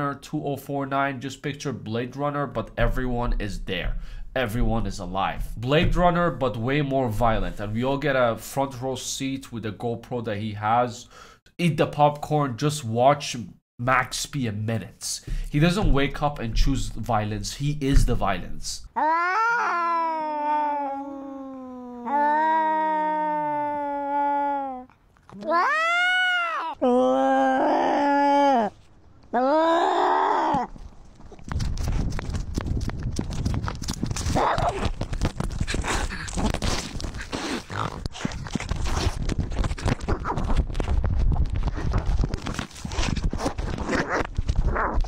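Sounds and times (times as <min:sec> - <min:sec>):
cat footfalls: 0:15.3 - 0:18.6
cat yowling: 0:19.0 - 0:28.7, 0:29.4 - 0:30.7.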